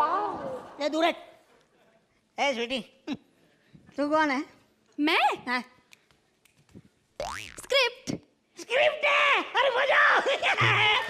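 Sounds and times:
cartoon boing: 7.2s - 7.7s.

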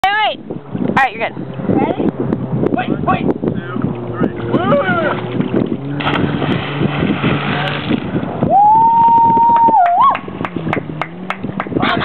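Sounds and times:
motorboat engine humming: 0.0s - 12.0s
wind and water rushing: 0.0s - 12.0s.

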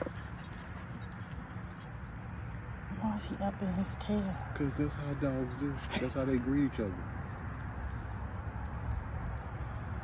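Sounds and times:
metallic jingling and ticks: 0.0s - 10.0s.

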